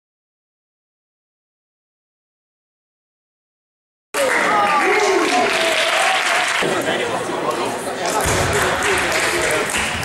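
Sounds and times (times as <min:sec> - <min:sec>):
audience clapping: 0:04.2 - 0:06.7, 0:08.0 - 0:10.0.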